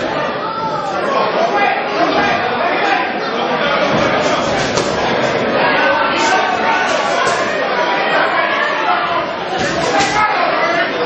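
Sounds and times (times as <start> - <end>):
crowd voices talking and calling: 0.0 - 11.0.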